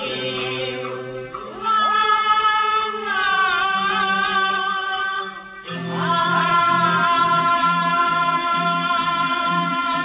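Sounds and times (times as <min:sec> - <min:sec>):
opera singing with strings: 0:00.0 - 0:10.0.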